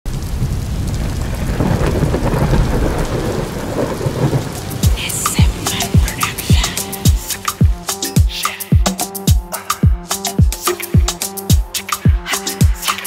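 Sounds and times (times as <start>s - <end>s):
rain: 0.0s - 8.4s
rolling thunder: 0.1s - 7.6s
deep kick drums: 4.8s - 12.2s.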